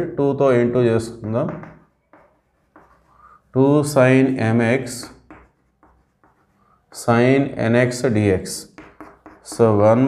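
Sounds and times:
chalk writing on chalkboard: 1.0 - 7.3, 7.9 - 10.0.

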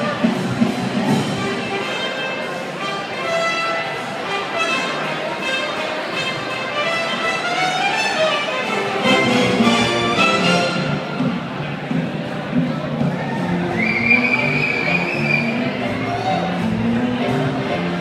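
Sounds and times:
live band music: 0.0 - 18.0.

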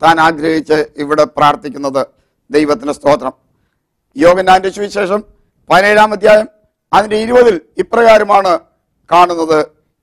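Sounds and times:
man talking: 0.0 - 3.4, 4.1 - 9.8.

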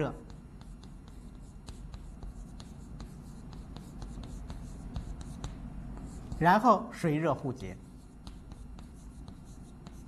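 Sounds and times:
chalk scratching on blackboard: 0.0 - 6.6, 7.7 - 10.0.

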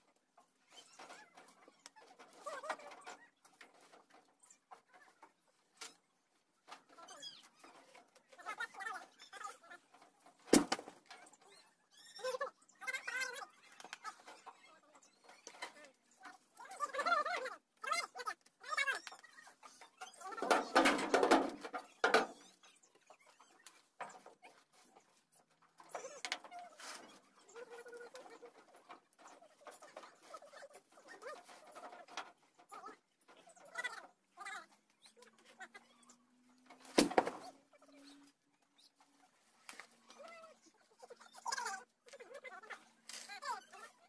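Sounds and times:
paper reel rolling: 6.9 - 38.2
scattered knocks: 20.4 - 22.4.

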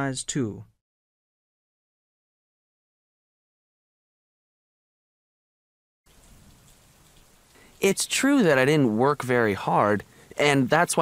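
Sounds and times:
faint room tone hiss: 6.1 - 11.0.

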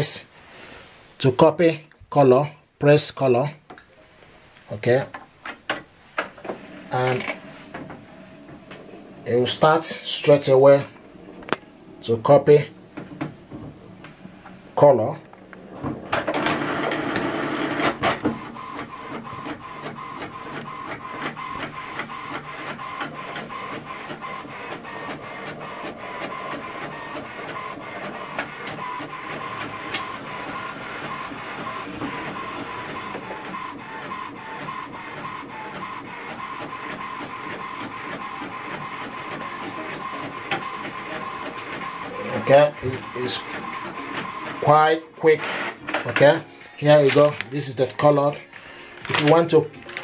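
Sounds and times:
printer mechanism noise: 4.8 - 50.0
page coming out of printer: 15.6 - 50.0
printer ticking: 16.0 - 50.0.

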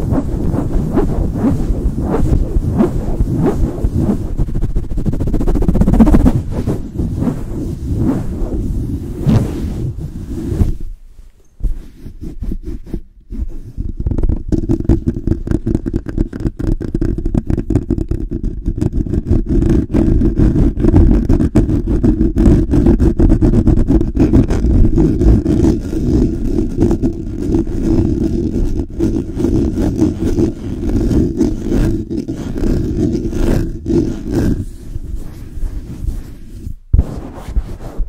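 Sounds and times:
hands rubbing microphone grille: 0.0 - 38.0.

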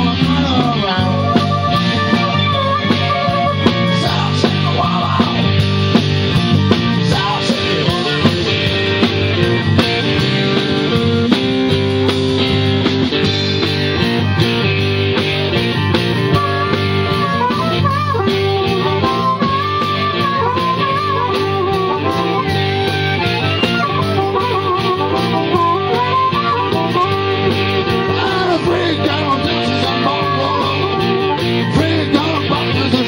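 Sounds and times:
blues-rock band playing: 0.0 - 33.0
harmonica bent notes: 0.5 - 33.0.

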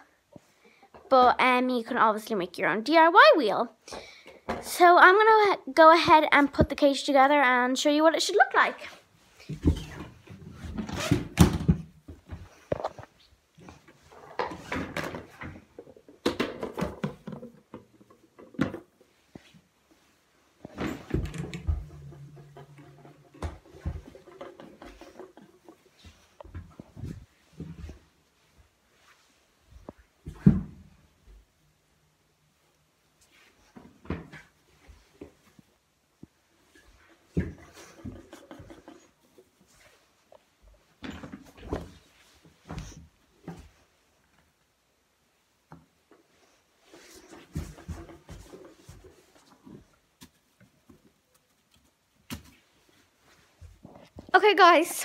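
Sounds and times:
knocks and clatters of cage parts: 20.7 - 27.2.

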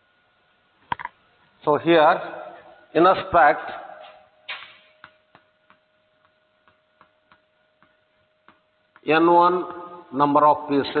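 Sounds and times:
chalk tapping on blackboard: 4.5 - 9.1.

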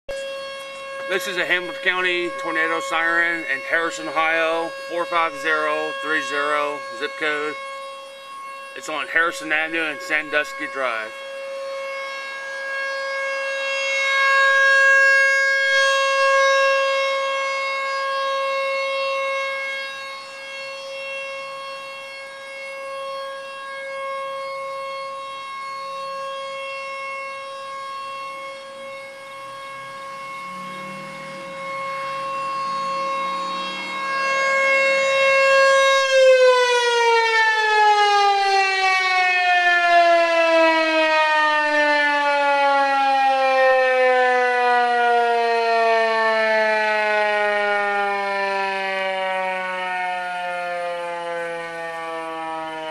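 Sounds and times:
warning siren winding down: 0.1 - 52.9.

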